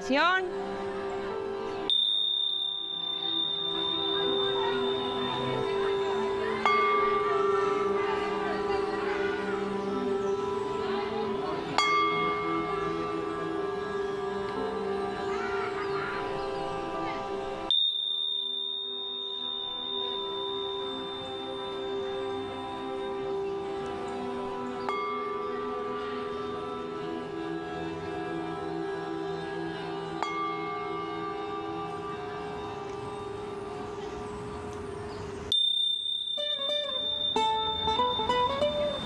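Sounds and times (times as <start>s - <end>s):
soft background music: 0.0s - 39.0s
cymbals ringing tone: 1.9s - 7.9s, 17.7s - 26.0s, 35.5s - 39.0s.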